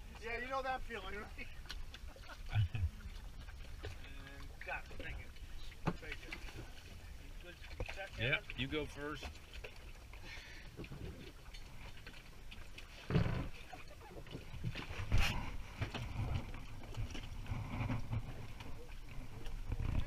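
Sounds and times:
people moving in a dinghy: 0.0 - 20.0.

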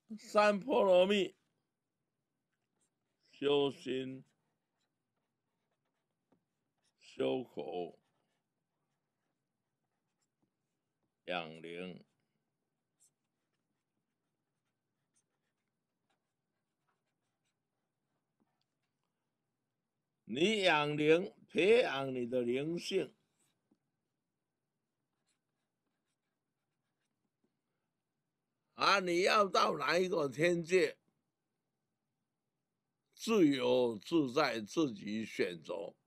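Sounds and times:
pen writing on paper: 2.4 - 3.3, 4.2 - 7.0, 7.9 - 11.2, 12.0 - 19.4, 24.9 - 27.6.

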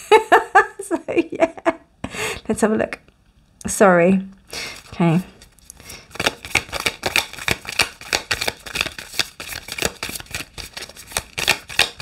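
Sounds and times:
cards being shuffled: 4.6 - 12.0.

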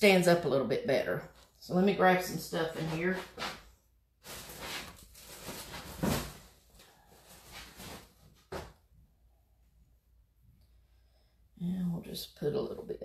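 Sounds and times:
rummaging and rustling stuffing: 4.2 - 8.6.

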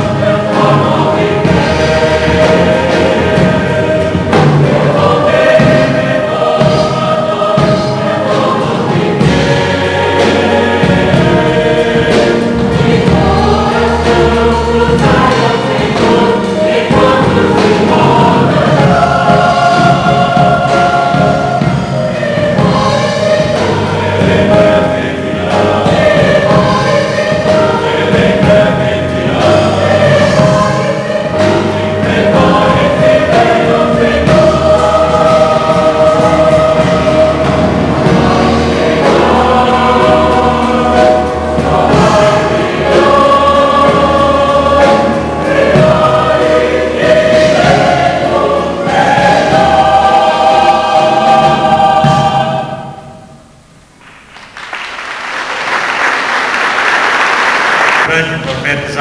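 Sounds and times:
mixed choir singing: 0.0 - 53.6.

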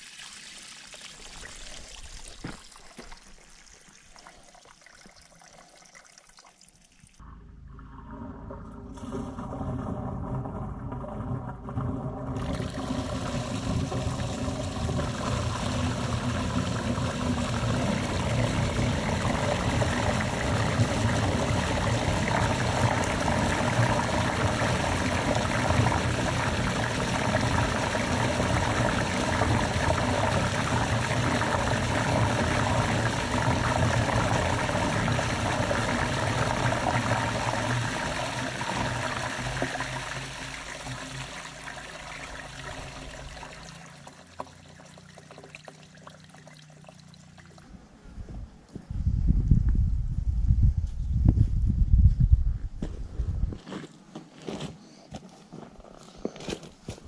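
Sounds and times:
water rushing through drain pipe: 0.0 - 47.7.

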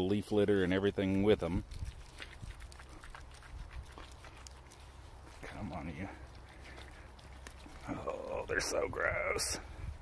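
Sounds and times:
net rustling through water and leaves: 1.0 - 8.7.

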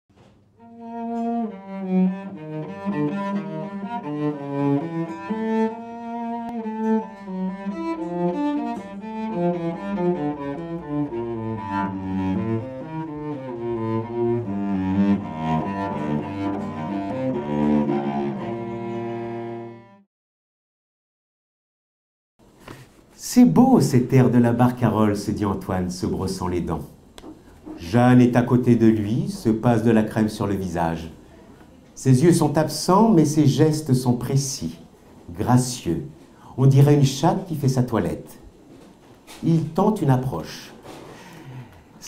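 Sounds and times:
solo cello melody: 0.6 - 20.1.

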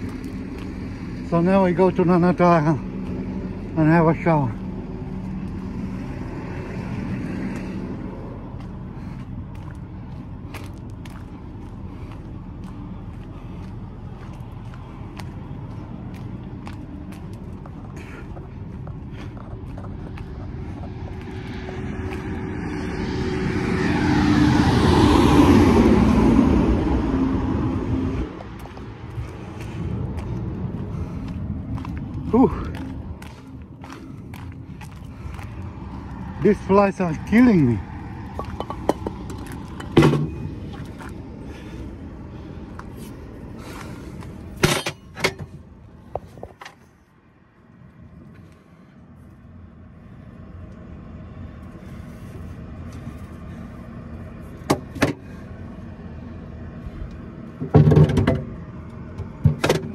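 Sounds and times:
heavy vehicle passing: 0.0 - 44.6
diesel truck engines idling: 0.0 - 59.9.

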